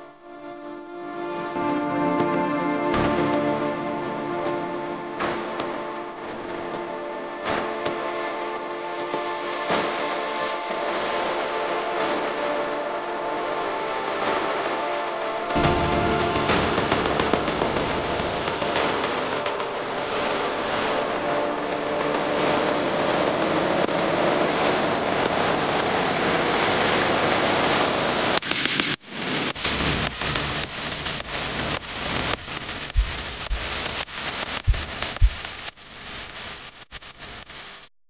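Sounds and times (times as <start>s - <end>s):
crackling noise with sharp pops: 2.2s - 37.9s.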